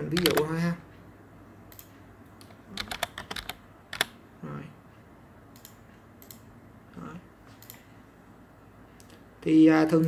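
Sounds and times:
keyboard typing: 0:00.0 - 0:00.6, 0:01.7 - 0:04.2, 0:05.5 - 0:06.5
sharp keyboard click: 0:00.1 - 0:00.5, 0:01.7 - 0:04.1.

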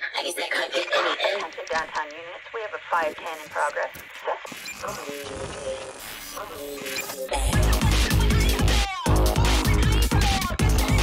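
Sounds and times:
filtered voice sample: 0:00.0 - 0:11.0
dance track bass: 0:07.4 - 0:11.0.

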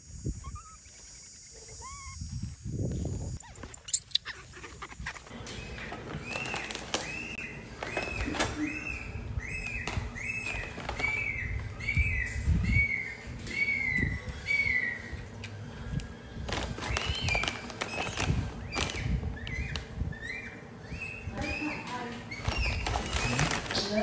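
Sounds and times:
high chirping calls: 0:00.0 - 0:15.4, 0:16.8 - 0:24.0
rustling and handling noise: 0:03.4 - 0:08.7, 0:09.9 - 0:11.7, 0:16.3 - 0:19.2, 0:21.9 - 0:24.0.

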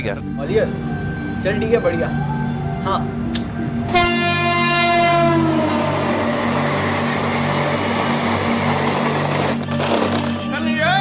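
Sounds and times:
train horn: 0:03.9 - 0:09.5
train running: 0:03.9 - 0:10.7.

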